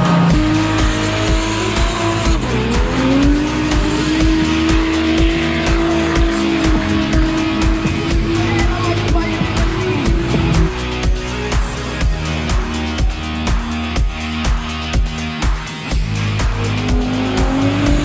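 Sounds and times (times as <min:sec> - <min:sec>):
car engine revving high: 0:00.0 - 0:14.0, 0:15.9 - 0:18.0
background music with beat: 0:00.0 - 0:18.0.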